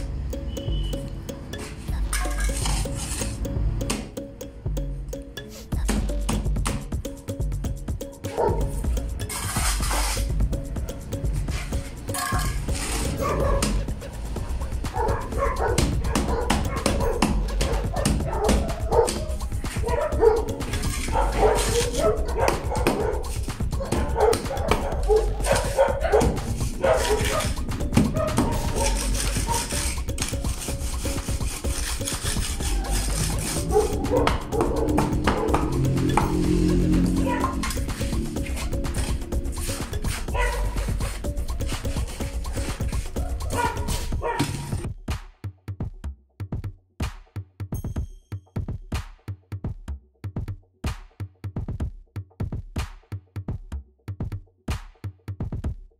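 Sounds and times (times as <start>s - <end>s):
background music: 0.0s - 55.7s
dog barking: 8.3s - 8.7s, 13.2s - 13.8s, 14.6s - 29.8s, 33.6s - 35.6s, 37.2s - 37.7s, 40.3s - 40.8s, 43.2s - 44.7s.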